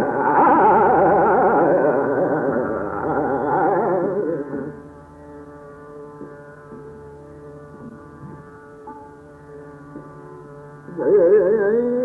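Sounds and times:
tanpura drone: 0:00.0 - 0:12.0.

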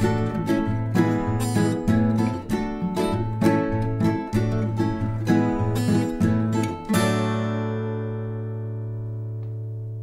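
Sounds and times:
strummed guitar and ukulele chord: 0:00.0 - 0:09.9.

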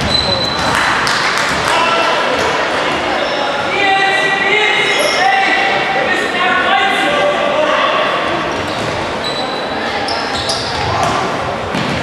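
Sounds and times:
short high squeaks: 0:09.2 - 0:10.8.

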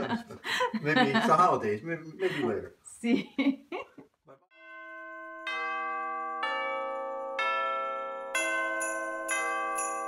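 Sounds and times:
bell-like chord music: 0:04.6 - 0:10.0.

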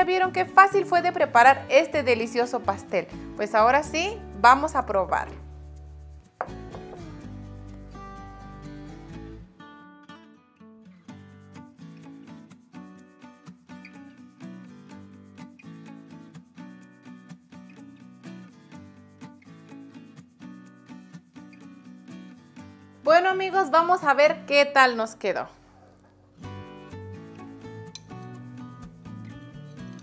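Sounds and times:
background music: 0:00.0 - 0:10.1, 0:11.1 - 0:30.0
knife knocking on wooden board: 0:06.4 - 0:07.2.

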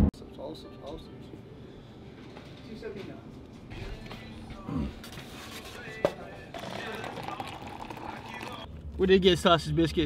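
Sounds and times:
background music: 0:00.0 - 0:08.9.

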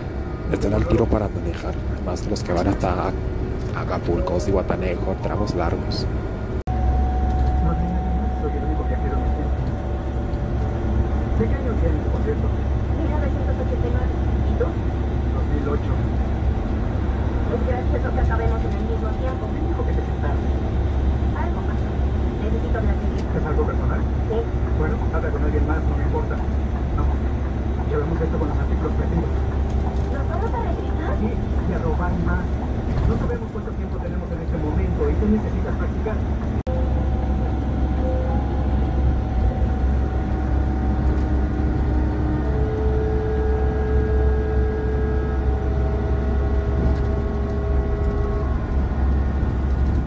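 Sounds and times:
bus engine and tyres droning: 0:00.0 - 0:50.0
faint steady whine: 0:00.0 - 0:50.0.

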